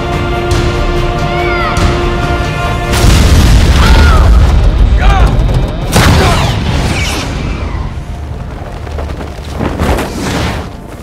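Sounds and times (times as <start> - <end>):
explosion with deep rumbling roar: 2.9 - 8.4.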